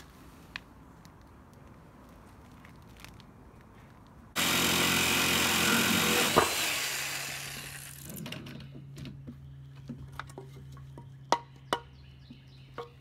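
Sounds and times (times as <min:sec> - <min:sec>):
power tool running: 0:04.4 - 0:08.2.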